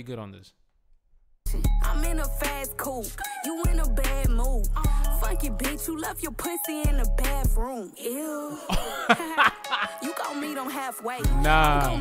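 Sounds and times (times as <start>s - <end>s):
rap music: 1.5s - 12.0s
man laughing: 8.5s - 10.1s.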